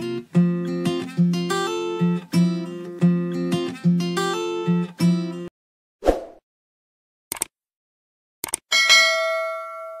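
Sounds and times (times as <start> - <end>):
notification bell ding: 8.7 - 10.0.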